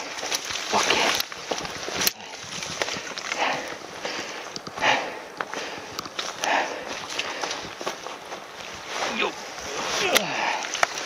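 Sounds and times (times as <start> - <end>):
person breathing heavily: 0.0 - 8.3, 9.3 - 11.0
footsteps on dry leaves and stones: 0.0 - 11.0.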